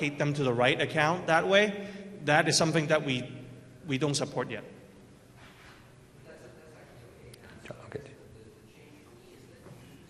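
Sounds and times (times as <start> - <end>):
faint low speech: 6.1 - 10.0.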